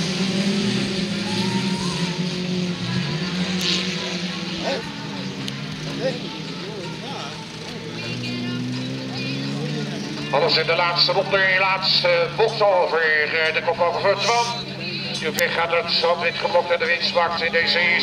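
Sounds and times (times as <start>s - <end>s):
race car engines accelerating: 0.0s - 18.0s.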